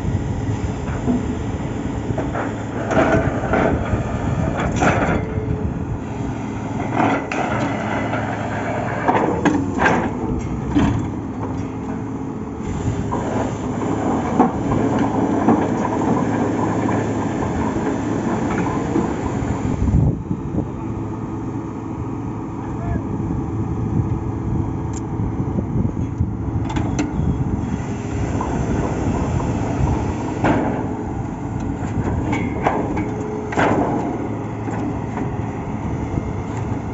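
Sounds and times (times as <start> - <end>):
drilling rig engine running: 0.0 - 36.9.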